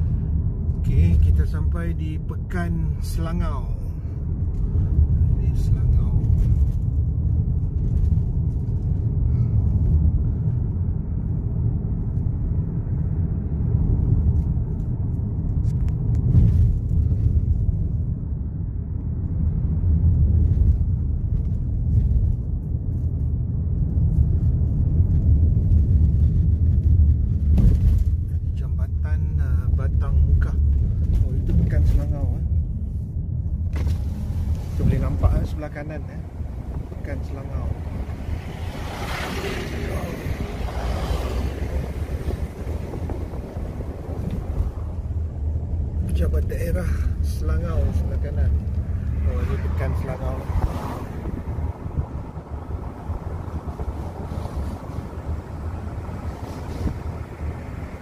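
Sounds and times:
car engine and tyre road rumble: 0:00.0 - 0:58.0.

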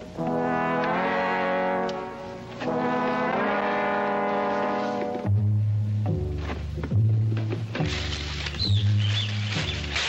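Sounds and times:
dramatic brass film score: 0:00.0 - 0:05.6.

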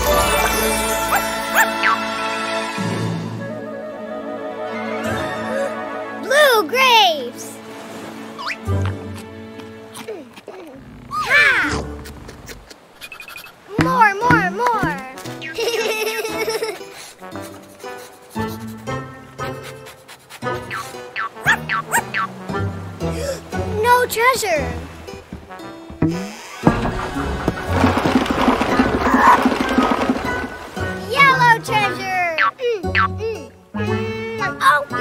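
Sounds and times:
background music: 0:00.0 - 0:10.3, 0:13.8 - 0:35.0
cartoon puppy bark-like cry: 0:21.4 - 0:22.3
wooden barrel knocked over: 0:26.0 - 0:30.9.

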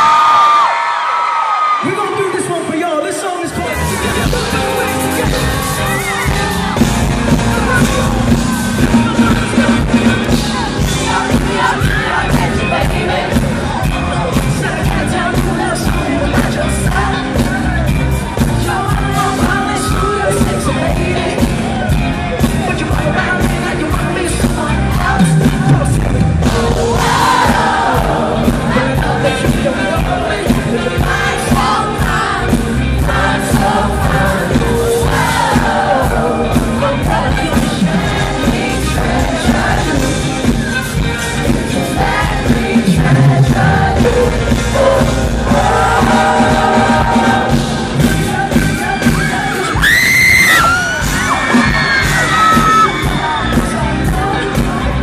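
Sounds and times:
fans screaming and whooping: 0:00.0 - 0:12.6, 0:48.1 - 0:55.0
live pop band: 0:00.0 - 0:55.0
man singing: 0:01.8 - 0:06.2, 0:07.4 - 0:55.0
drum beat: 0:03.8 - 0:54.9
loud high held scream: 0:49.8 - 0:53.0.

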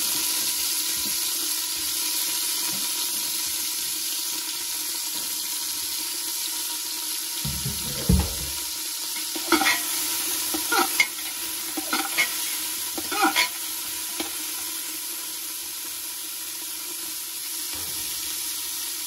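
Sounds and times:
vegetables sizzling in a pot: 0:00.0 - 0:19.0
dull thump: 0:07.4 - 0:08.6
metal spoon scraping a pot: 0:09.2 - 0:14.4.

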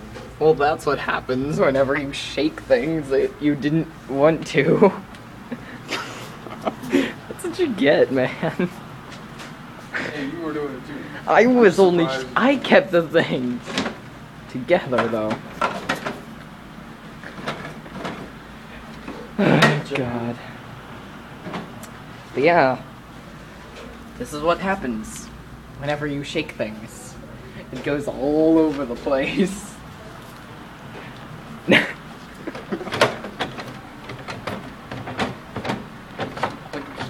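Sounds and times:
man's voice burst: 0:19.3 - 0:20.6
sharp knocks and clicks: 0:32.5 - 0:37.0.

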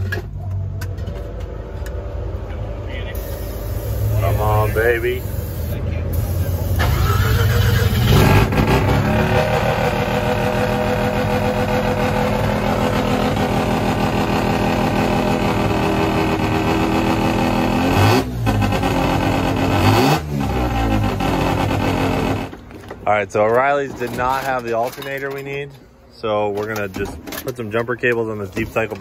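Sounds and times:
van engine revving: 0:00.0 - 0:22.7.

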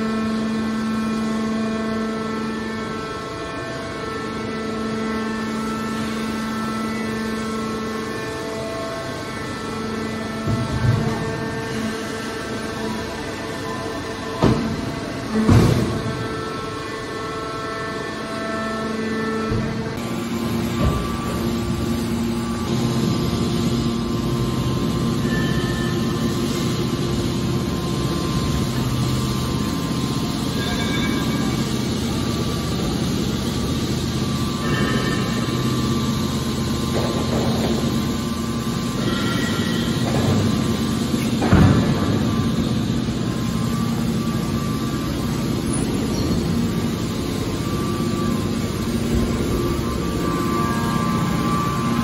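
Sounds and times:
hydraulic power pack humming: 0:00.0 - 0:52.0.

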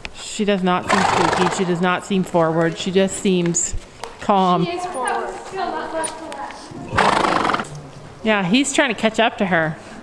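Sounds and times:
horse neighing: 0:00.8 - 0:01.8, 0:06.8 - 0:07.9.

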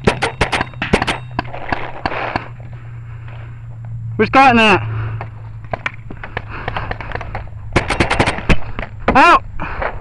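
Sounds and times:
paintball markers firing: 0:00.0 - 0:02.5, 0:05.7 - 0:08.9.

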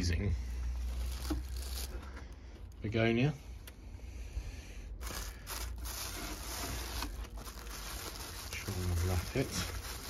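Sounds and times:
plastic bag crinkling: 0:00.8 - 0:02.3, 0:05.0 - 0:10.0.

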